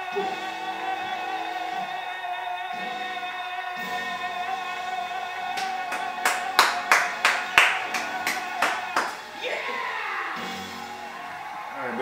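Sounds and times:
sharp hand claps: 5.6 - 9.3.

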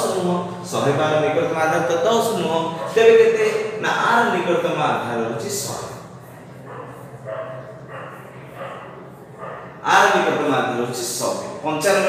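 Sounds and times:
dog barking faintly: 2.7 - 3.6, 6.3 - 10.1.

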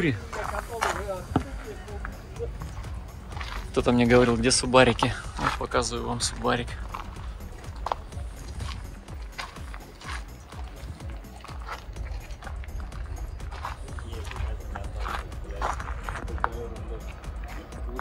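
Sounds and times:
scattered voices: 0.0 - 18.0.

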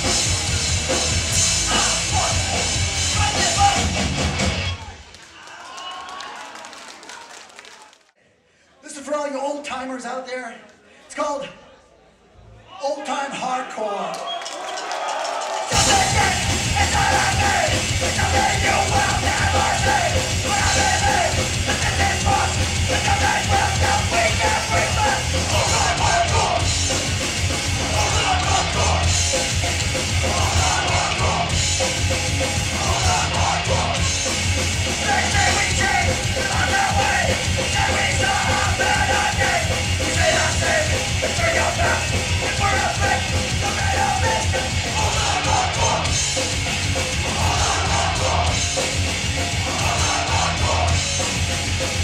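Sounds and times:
punk band playing live: 0.0 - 5.1, 15.6 - 52.0.

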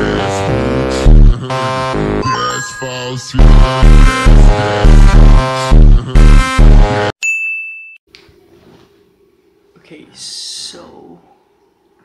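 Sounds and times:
bright high ding: 2.2 - 3.5, 7.2 - 8.0.

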